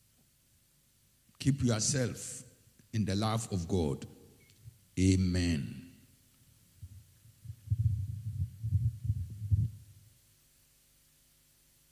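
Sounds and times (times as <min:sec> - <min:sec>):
microphone handling thumps: 0:06.8 - 0:10.0.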